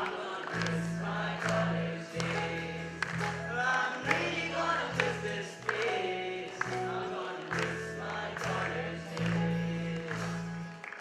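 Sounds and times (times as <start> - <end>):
keyboard: 0.0 - 11.0
electric bass guitar: 7.6 - 10.8.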